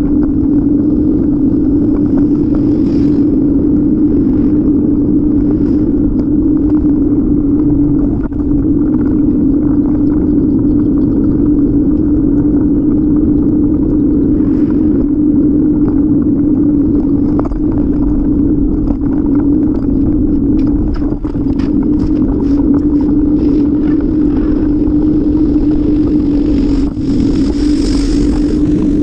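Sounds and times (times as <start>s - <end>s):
bicycle tyres rolling on pavement: 0.0s - 29.0s
low hum: 0.0s - 29.0s
wind buffeting microphone: 0.0s - 29.0s.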